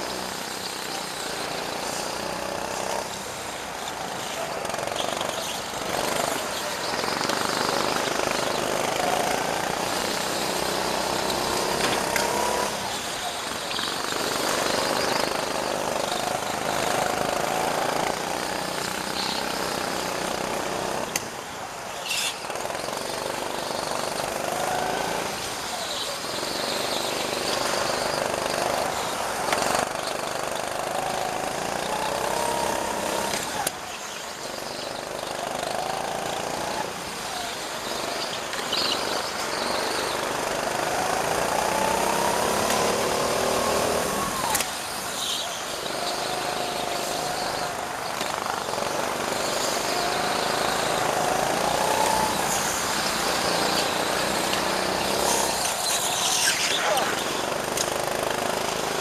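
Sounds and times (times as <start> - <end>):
go-kart engine accelerating: 0.0 - 59.0.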